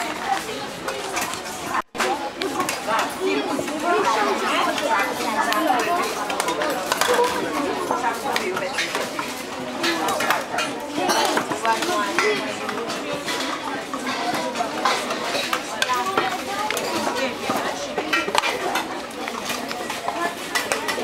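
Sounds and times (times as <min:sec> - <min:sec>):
children chattering: 0:00.0 - 0:21.0
cups and cutlery clinking on plates: 0:00.8 - 0:21.0.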